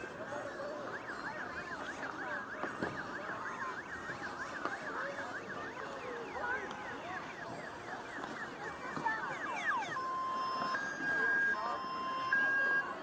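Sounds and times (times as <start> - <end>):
background crowd noise: 0.0 - 13.0
siren in fast yelp: 0.0 - 13.0.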